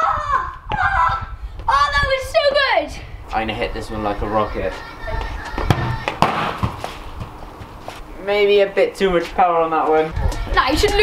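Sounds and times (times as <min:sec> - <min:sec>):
footsteps on patio slabs: 0:01.5 - 0:02.6, 0:03.2 - 0:11.0
football kicked thud: 0:05.7 - 0:07.4.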